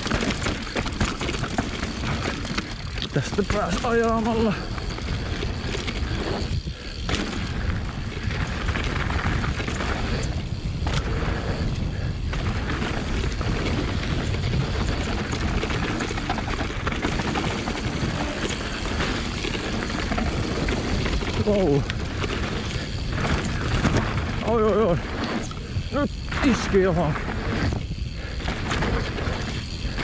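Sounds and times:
bike rattling and knocking: 0:00.0 - 0:30.0
tyres on loose dirt: 0:00.0 - 0:30.0
wind buffeting microphone: 0:00.0 - 0:30.0.

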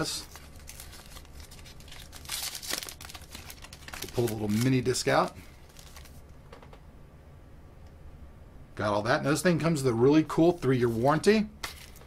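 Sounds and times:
paper tearing and crinkling: 0:00.0 - 0:06.2.

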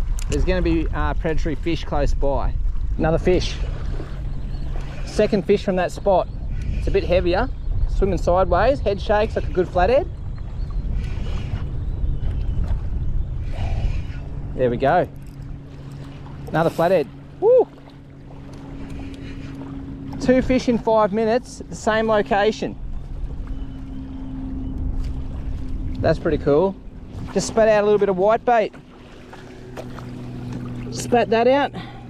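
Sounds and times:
low hum: 0:00.0 - 0:32.0
wind rumble on microphone: 0:00.0 - 0:32.0.

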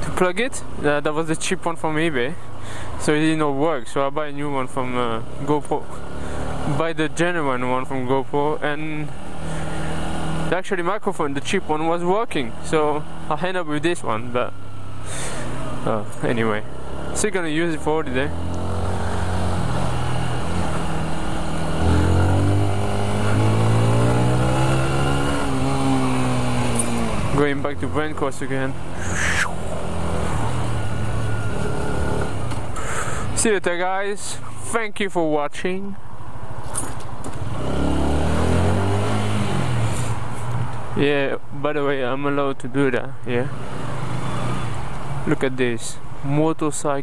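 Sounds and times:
motorcycle engine shifting gears: 0:09.1 - 0:10.5, 0:18.1 - 0:33.1, 0:36.6 - 0:40.9
motorcycle engine pulling away: 0:18.3 - 0:27.4.

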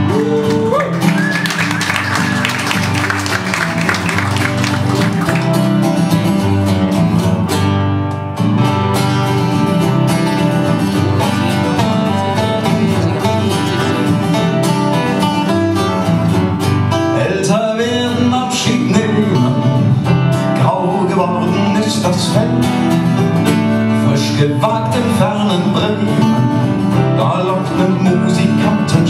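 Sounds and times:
acoustic folk music: 0:00.0 - 0:29.0
acoustic guitars strummed and picked: 0:00.0 - 0:29.0.

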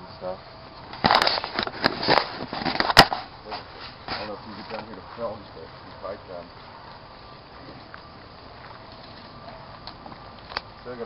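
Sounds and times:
rustling of leaves and brush: 0:00.0 - 0:11.0.

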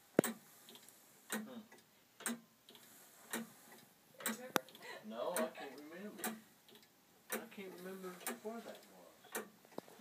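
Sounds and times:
tower clock ticking: 0:00.0 - 0:10.0.

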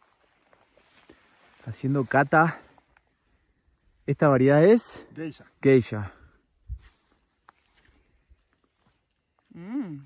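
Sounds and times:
faint high-pitched insect whine: 0:00.0 - 0:10.0.

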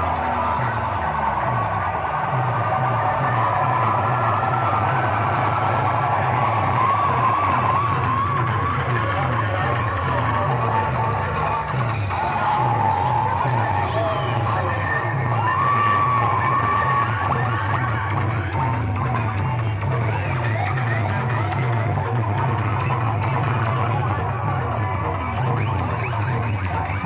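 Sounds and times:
heavy bass beat: 0:00.0 - 0:27.0
loud music over loudspeakers: 0:00.0 - 0:27.0.

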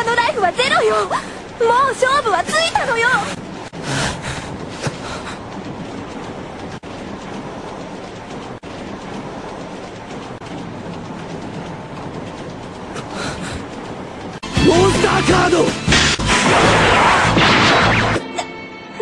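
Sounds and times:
dense rushing noise: 0:02.6 - 0:18.2.

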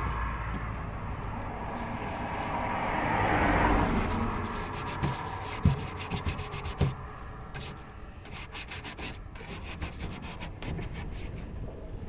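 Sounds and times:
bristle brush scrubbing paper: 0:03.8 - 0:07.0, 0:07.6 - 0:11.4.

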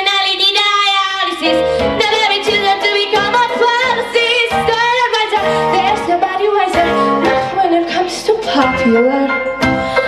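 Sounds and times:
girl singing into microphone: 0:00.0 - 0:10.0
pop backing track: 0:00.0 - 0:10.0.

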